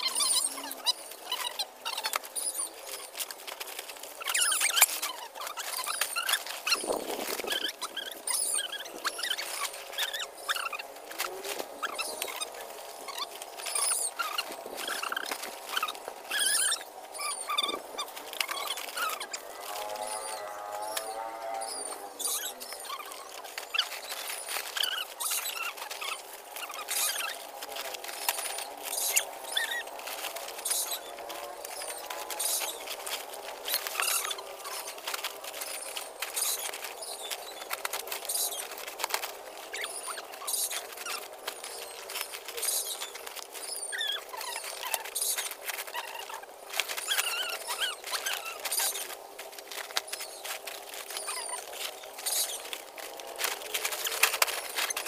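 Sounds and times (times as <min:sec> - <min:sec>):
dry sticks crackling: 0:00.0 - 0:55.0
plastic sack rustling: 0:00.0 - 0:55.0.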